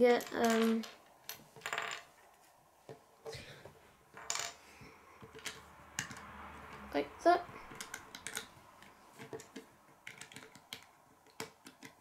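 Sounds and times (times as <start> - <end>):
plastic pieces clicking on table: 0.0 - 2.1, 7.7 - 12.0.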